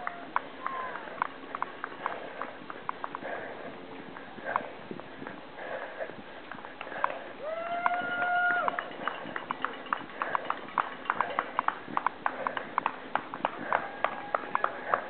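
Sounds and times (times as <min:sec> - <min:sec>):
runner's footsteps on road: 0:00.0 - 0:15.0.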